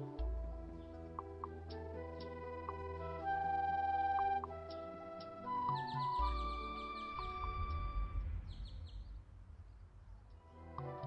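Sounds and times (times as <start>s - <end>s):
background music: 0.0s - 9.0s, 10.4s - 11.0s
bird chirps: 1.7s - 9.8s
low rumble: 6.2s - 10.8s.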